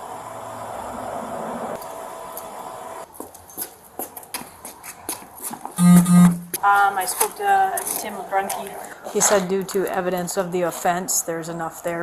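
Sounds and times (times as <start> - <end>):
steady hum: 5.8 - 6.8.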